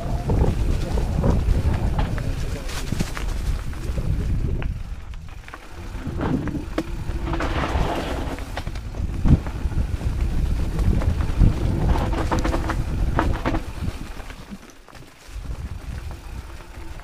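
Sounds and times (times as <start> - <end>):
wind buffeting microphone: 0.0 - 14.6, 15.2 - 17.0
bike knocks and rattles: 0.0 - 17.0
tyres rumbling on rock: 0.0 - 17.0
rush of noise: 5.6 - 14.0.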